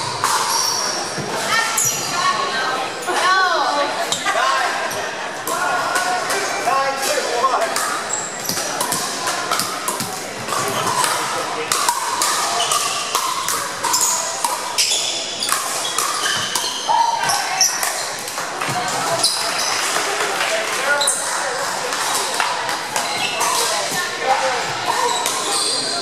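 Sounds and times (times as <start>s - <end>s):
paddles striking balls: 0.0s - 1.4s, 7.0s - 20.8s
background chatter: 0.0s - 26.0s.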